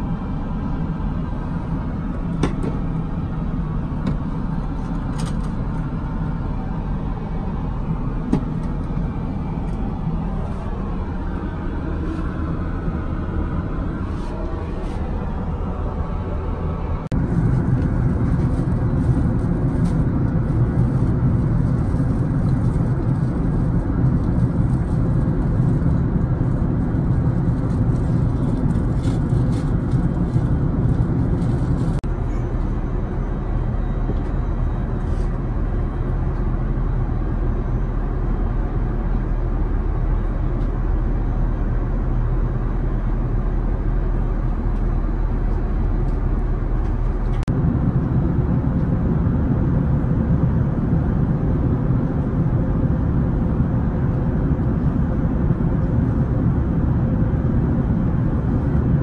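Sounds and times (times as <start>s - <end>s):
airplane cabin engine drone: 0.0s - 59.0s.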